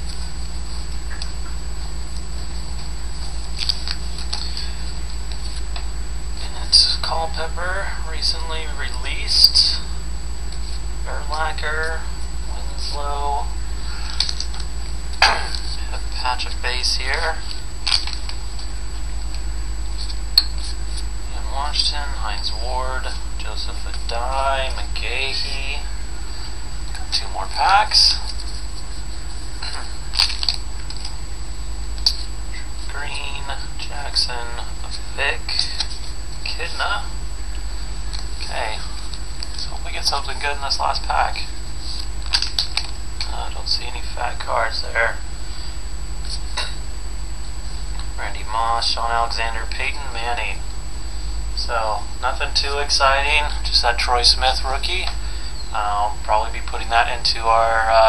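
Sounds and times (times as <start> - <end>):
faint high whine: 0.0 - 58.0
low electrical hum: 0.0 - 58.0
cards rustling: 2.5 - 5.8, 13.9 - 21.1, 23.8 - 31.2, 32.0 - 33.5, 34.6 - 36.8, 38.0 - 43.3.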